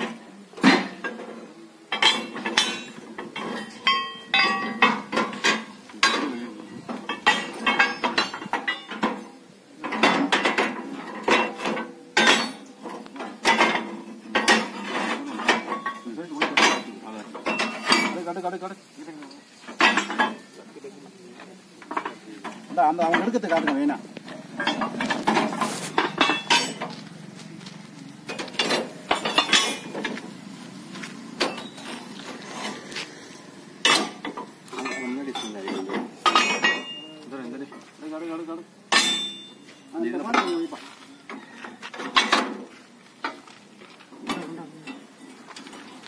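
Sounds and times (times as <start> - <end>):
iron parts clanking on metal: 0.0 - 18.5, 19.5 - 20.8, 21.4 - 27.4, 28.2 - 43.4, 44.1 - 46.0.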